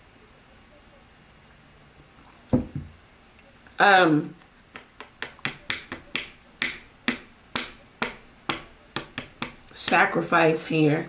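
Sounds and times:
fingernails tapping on cards: 0:04.7 - 0:10.0.

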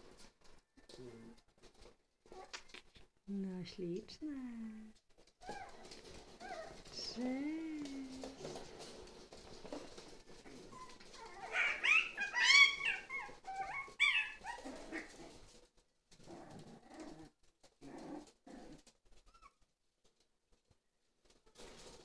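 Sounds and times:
puppies whining and yelping: 0:05.4 - 0:06.9, 0:10.4 - 0:15.4.

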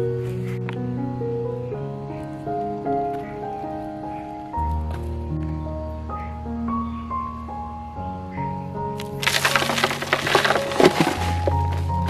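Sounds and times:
soil pouring into a box: 0:09.0 - 0:12.0.

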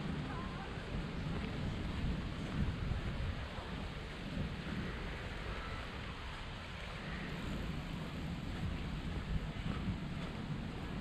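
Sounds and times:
steady outdoor hiss: 0:00.0 - 0:11.0
wind rumbling on microphone: 0:00.0 - 0:11.0.

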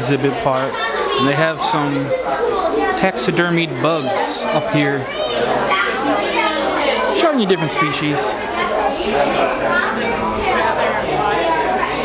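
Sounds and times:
children talking and calling: 0:00.0 - 0:12.0.

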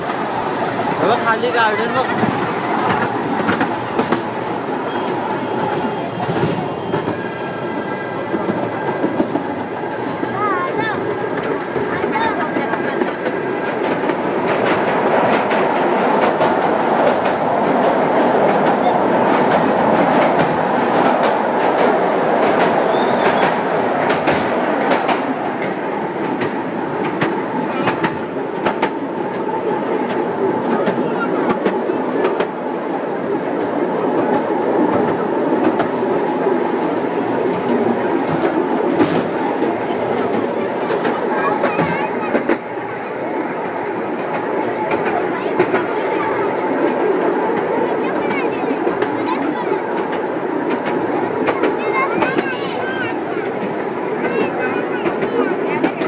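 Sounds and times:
train wheels rumbling on rail: 0:00.0 - 0:56.0
wheels clicking over rail joints: 0:33.6 - 0:56.0.

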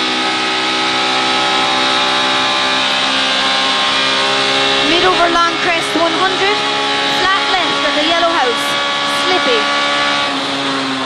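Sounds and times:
car engine at high revs: 0:00.0 - 0:11.0
tyre and road noise: 0:00.0 - 0:11.0.

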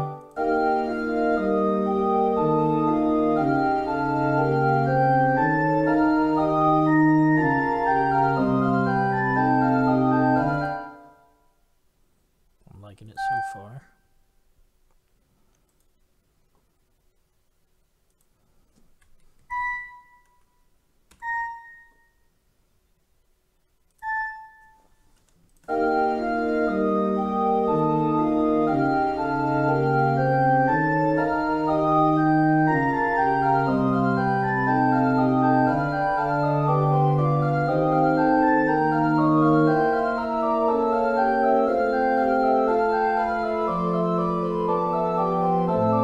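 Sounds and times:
synthesized pipe organ fugue: 0:00.0 - 0:11.2, 0:25.7 - 0:46.0.

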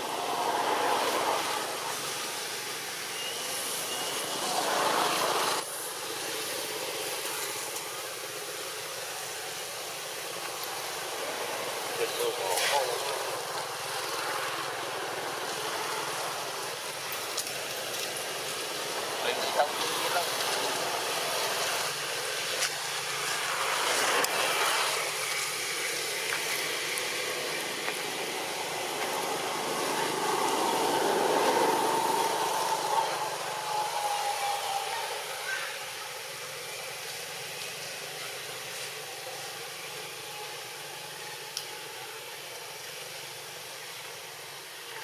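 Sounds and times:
steady outdoor hiss: 0:00.0 - 0:45.0
motor vehicle passing: 0:26.4 - 0:35.4.

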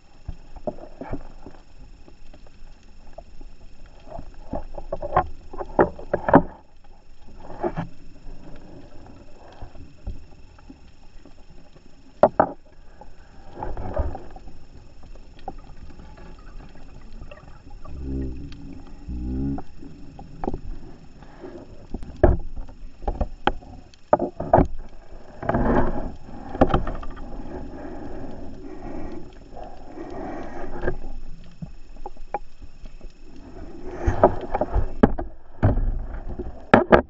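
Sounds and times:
bubbling exhalations underwater: 0:15.7 - 0:20.9.

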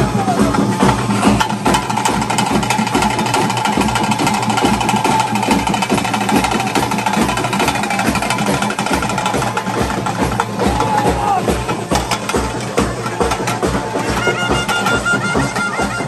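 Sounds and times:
low drum beats: 0:00.0 - 0:16.0
rapid drum roll: 0:00.0 - 0:16.0.

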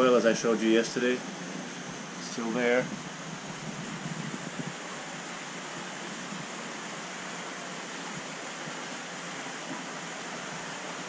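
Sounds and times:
water rushing through aquarium tanks: 0:00.0 - 0:11.0.

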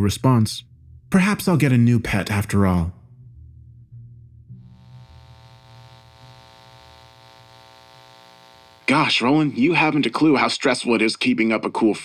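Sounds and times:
electrical buzz: 0:04.6 - 0:09.6
person speaking: 0:08.8 - 0:10.3.

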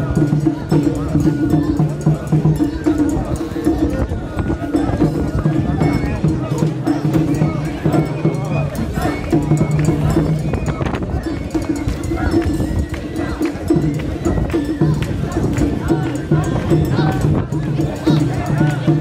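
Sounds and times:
dense street crowd noise: 0:00.0 - 0:19.0
people chanting together: 0:00.0 - 0:19.0.

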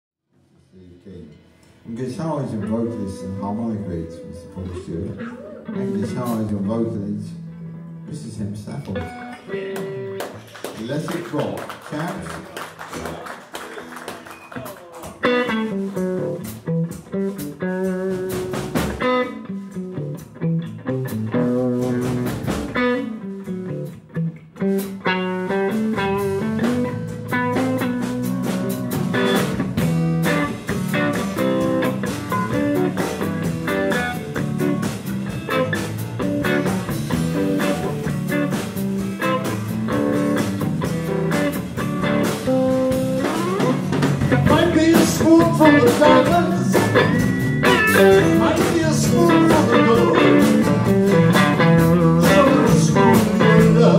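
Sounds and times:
sparse guitar phrases: 0:00.6 - 0:10.2, 0:14.6 - 0:53.9
blues band playing: 0:01.5 - 0:53.9.

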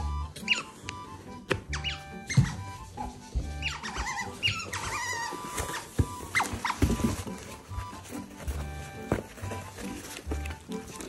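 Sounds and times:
background music: 0:00.0 - 0:11.0
otters chirping: 0:01.6 - 0:08.0.

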